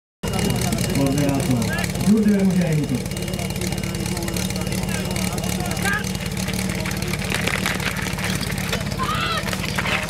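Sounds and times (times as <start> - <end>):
engine running: 0.2 - 10.0.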